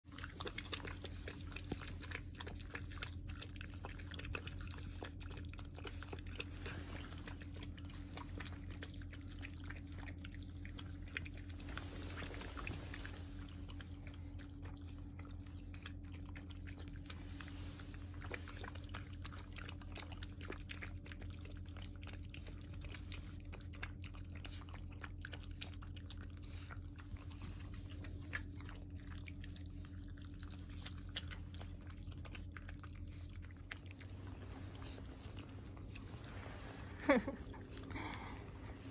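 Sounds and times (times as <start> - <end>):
puppies chewing from steel bowls: 0.0 - 38.9
faint low hum: 0.1 - 38.9.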